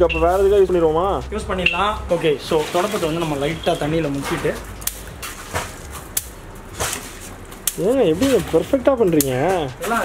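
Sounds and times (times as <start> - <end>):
mud splattering from broom: 2.4 - 10.0.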